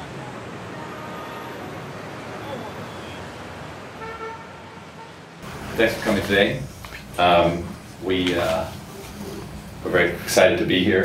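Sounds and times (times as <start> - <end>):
city street traffic: 0.0 - 11.0
car horn toot: 4.0 - 5.2.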